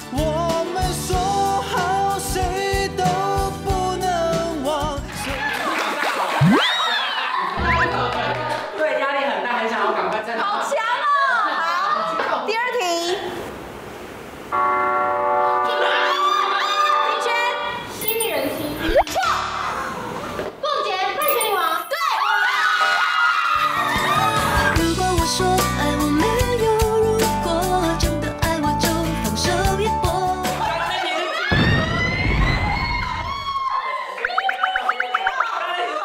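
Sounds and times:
rising siren-like whine: 7.6s - 8.3s.

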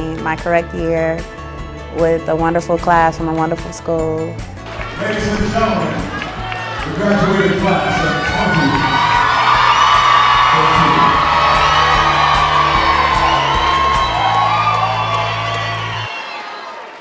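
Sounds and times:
background music with bass line: 0.0s - 16.1s
crowd cheering and whooping: 4.7s - 17.0s.

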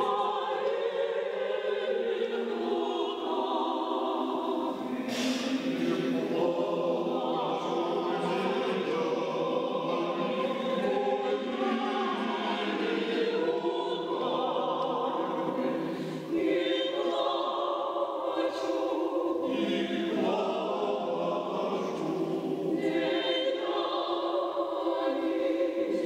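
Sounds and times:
choir singing a cappella: 0.0s - 26.0s.

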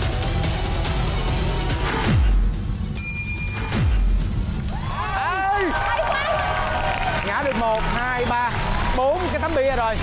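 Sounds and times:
background music: 0.0s - 10.0s
people shouting excitedly: 4.7s - 7.2s.

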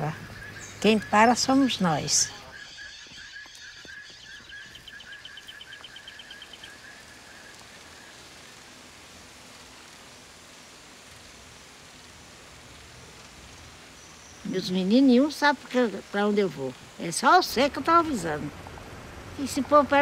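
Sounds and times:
background hiss: 0.0s - 20.0s
steady high whine: 0.0s - 20.0s.

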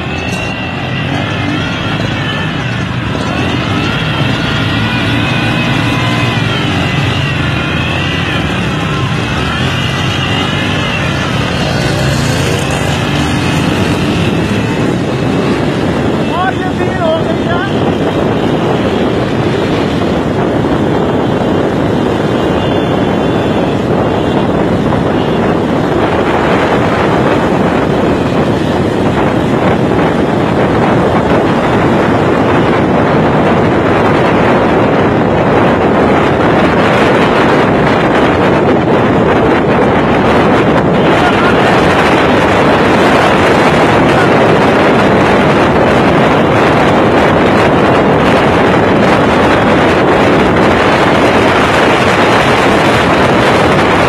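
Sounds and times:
racing engines: 0.0s - 54.0s
wind rushing over microphone: 0.0s - 54.0s.

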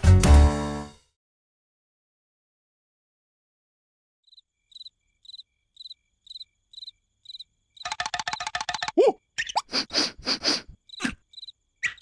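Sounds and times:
cricket chirping: 4.2s - 12.0s.

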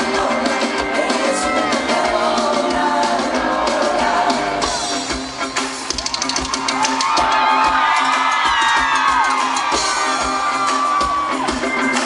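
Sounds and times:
live pop-rock band: 0.0s - 12.0s
audience screaming and whooping: 1.1s - 12.0s.

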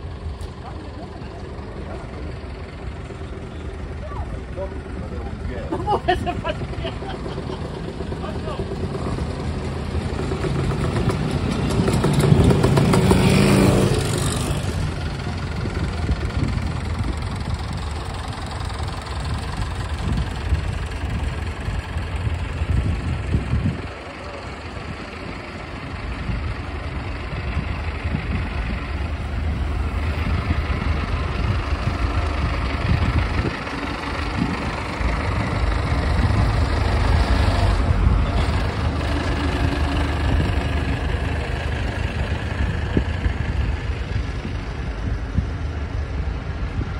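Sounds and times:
tractor engines idling: 0.0s - 46.9s
people talking: 0.5s - 2.2s, 3.9s - 7.2s, 8.1s - 8.8s, 23.9s - 24.8s
engine revving: 7.0s - 17.1s, 27.5s - 44.1s.

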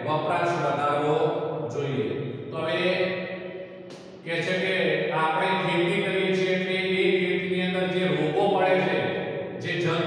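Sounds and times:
man reading aloud: 0.0s - 3.2s, 4.2s - 10.0s.

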